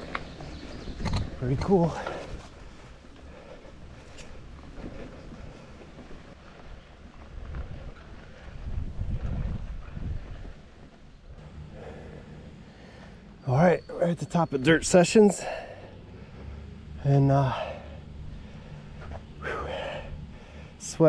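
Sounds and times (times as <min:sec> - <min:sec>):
bike tyres rumbling on dirt: 0:00.0 - 0:13.6.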